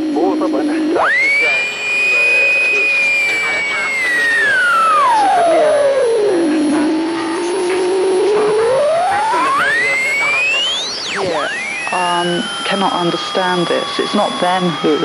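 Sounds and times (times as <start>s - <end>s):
electronic whistling tone sliding: 1.0s - 15.0s.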